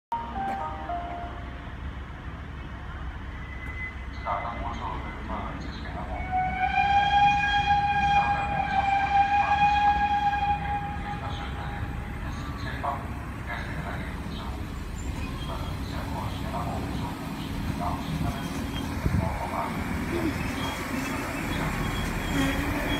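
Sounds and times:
diesel railcar rumbling: 0:00.1 - 0:22.9
steam locomotive whistle: 0:06.2 - 0:11.3.

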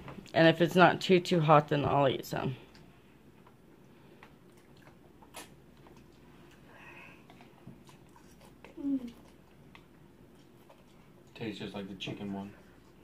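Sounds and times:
chewing and slurping: 0:02.7 - 0:11.4.

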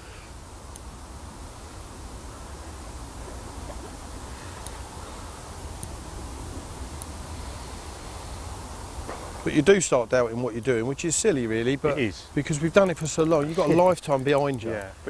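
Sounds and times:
even hiss: 0:00.0 - 0:15.0
faint ticks: 0:03.3 - 0:04.9, 0:05.7 - 0:06.0.

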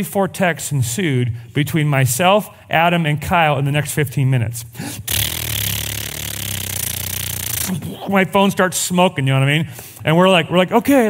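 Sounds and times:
man making buzzing mouth sound: 0:04.8 - 0:08.1.

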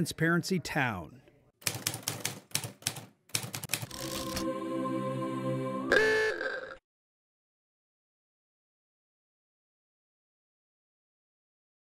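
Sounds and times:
typewriter keys clacking: 0:01.6 - 0:04.4
held musical tone: 0:03.9 - 0:06.5.

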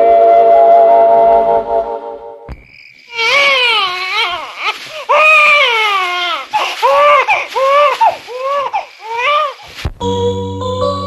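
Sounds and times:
infant crying: 0:03.1 - 0:09.7.

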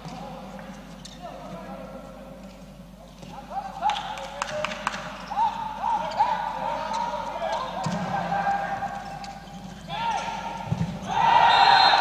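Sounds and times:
sneakers squeaking on court floor: 0:08.9 - 0:11.2.

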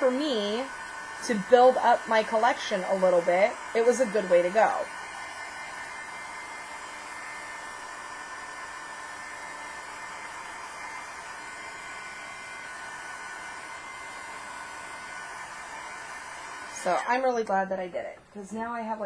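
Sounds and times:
electric blower whooshing: 0:00.0 - 0:17.4.

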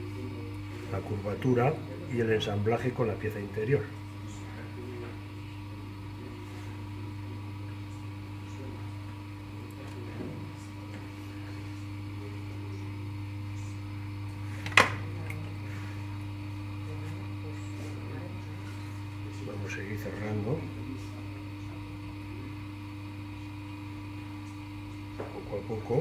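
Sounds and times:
potter's wheel motor humming: 0:00.0 - 0:26.0.

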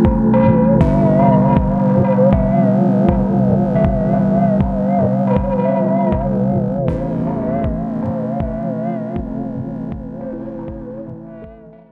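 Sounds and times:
wavering synth tone: 0:00.0 - 0:11.8
bass notes: 0:00.0 - 0:11.9.

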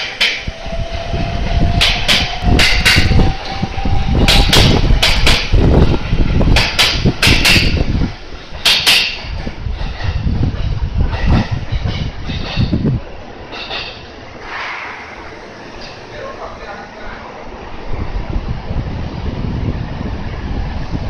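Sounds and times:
train wheels clicking over rail joints: 0:00.0 - 0:16.8
train running rumble: 0:00.0 - 0:21.0.

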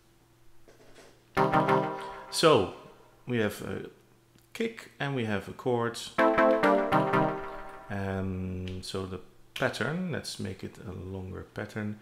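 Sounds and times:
synth chord stab: 0:01.4 - 0:03.0, 0:06.2 - 0:08.2.

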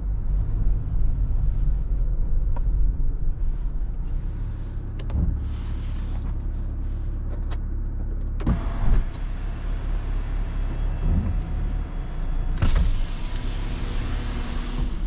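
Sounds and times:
low cabin rumble: 0:00.0 - 0:15.0.

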